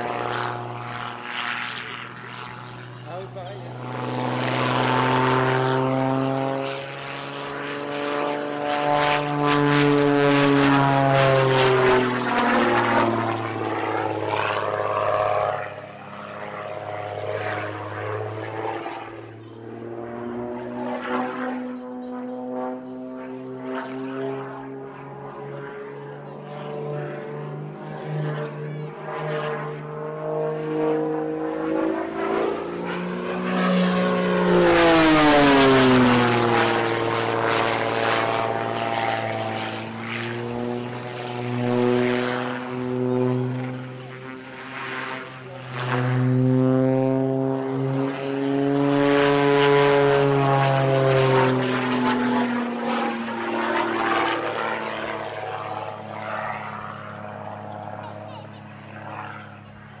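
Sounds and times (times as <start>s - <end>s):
propeller plane passing overhead: 0.0s - 60.0s.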